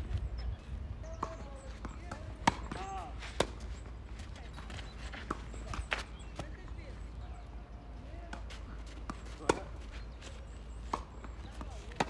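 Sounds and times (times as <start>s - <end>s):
tennis ball bouncing knock: 1.2s - 3.5s.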